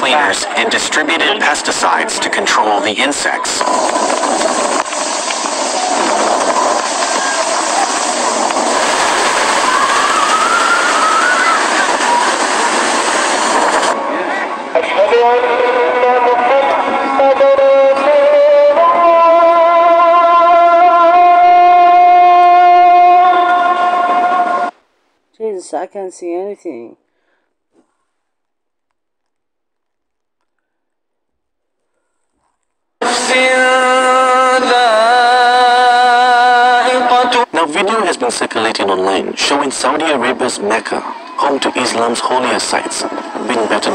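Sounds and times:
storm wind rushing: 0:00.0 - 0:16.0, 0:39.1 - 0:43.9
long horn-like tones: 0:14.8 - 0:24.7.

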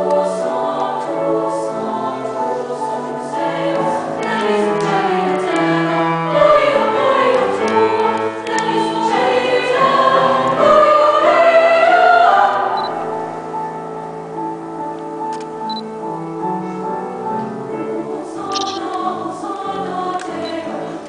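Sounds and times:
female choir singing: 0:00.0 - 0:13.3, 0:17.6 - 0:21.0.

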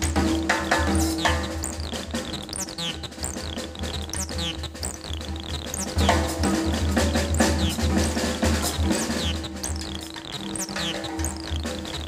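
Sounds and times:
jazz drum kit solo: 0:00.0 - 0:12.0.

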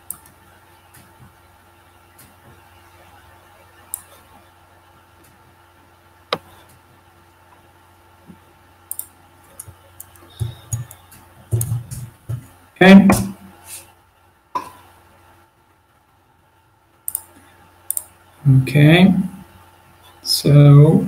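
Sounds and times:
faint room hum: 0:00.0 - 0:21.0
laptop mouse and key clicks: 0:08.9 - 0:12.0.

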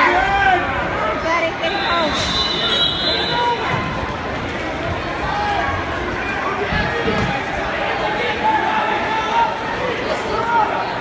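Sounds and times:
hubbub of many voices: 0:00.0 - 0:11.0.

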